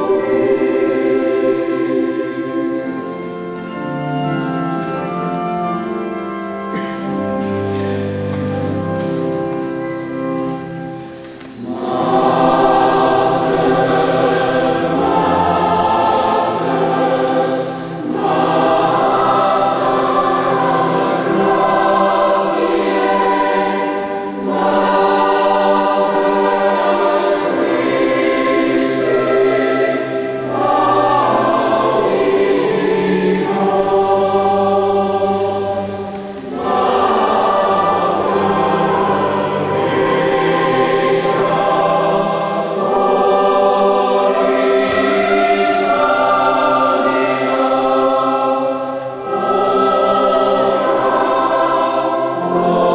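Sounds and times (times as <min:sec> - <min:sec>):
choir singing: 0:00.0 - 0:52.9.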